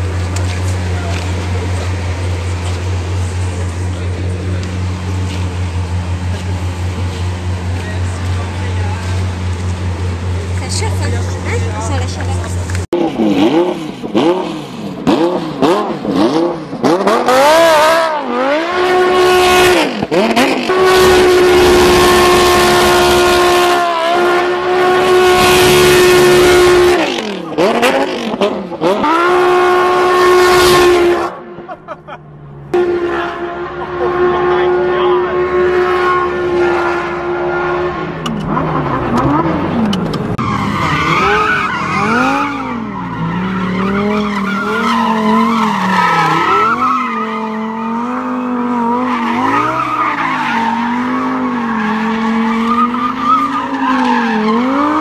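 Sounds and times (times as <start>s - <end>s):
supercar engine revving: 0.0s - 55.0s
tyre squeal: 40.4s - 55.0s.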